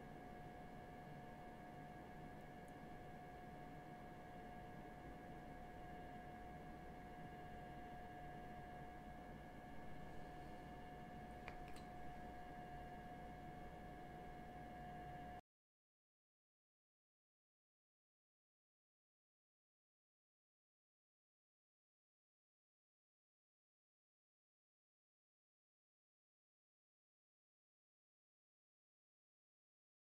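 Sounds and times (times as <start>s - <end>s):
faint steady hum: 0.0s - 15.4s
faint small clicks: 11.4s - 12.0s.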